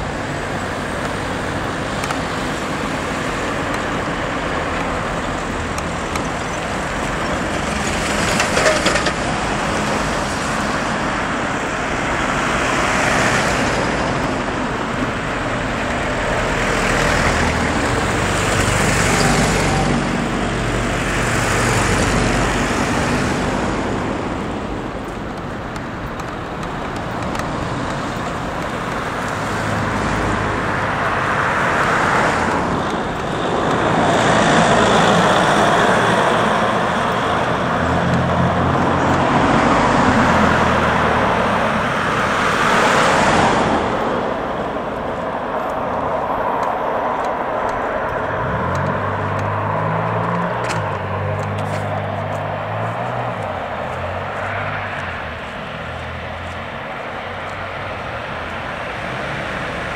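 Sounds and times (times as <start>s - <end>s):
cars and vans passing: 0.0s - 59.9s
road noise: 0.0s - 59.9s.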